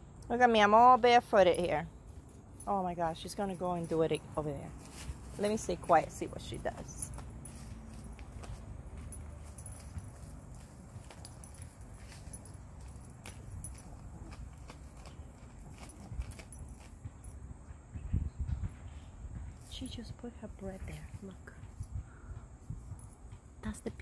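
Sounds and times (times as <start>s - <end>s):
dog rustling soil and leaves: 2.0s - 17.0s.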